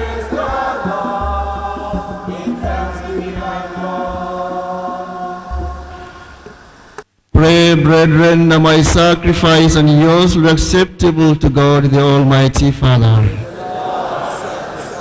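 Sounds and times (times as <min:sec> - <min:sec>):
congregation singing a hymn: 0:00.0 - 0:06.8, 0:13.4 - 0:15.0
man speaking loudly: 0:07.4 - 0:13.4.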